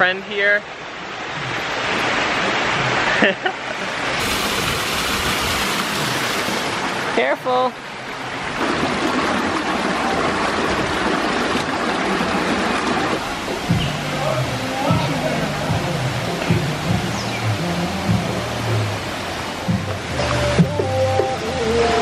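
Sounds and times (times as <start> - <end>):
stream rushing over rocks: 0.0 - 22.0
music with moving bass line: 13.6 - 22.0.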